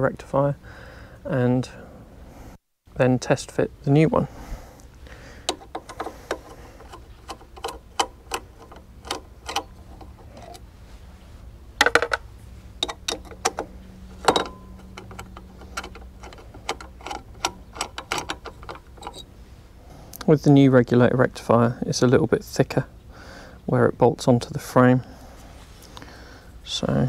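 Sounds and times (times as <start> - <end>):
socket ratchet clicking: 12.8 - 19.2.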